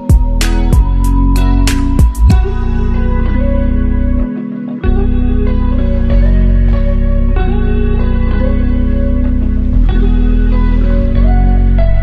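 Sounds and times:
plucked guitar: 0.0s - 12.0s
sustained bass notes: 0.0s - 12.0s.

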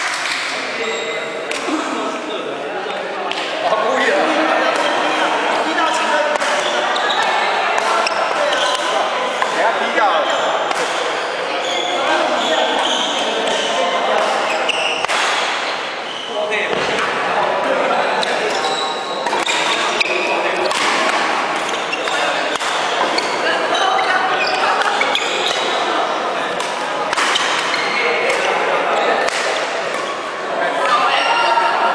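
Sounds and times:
chatter of voices: 0.0s - 31.9s
racket hitting shuttlecock: 1.5s - 1.7s, 3.3s - 3.6s, 4.7s - 5.0s, 5.9s - 6.8s, 7.8s - 9.6s, 10.7s - 11.1s, 13.4s - 15.8s, 19.2s - 19.8s, 20.6s - 23.4s, 26.5s - 28.6s, 29.2s - 30.1s.

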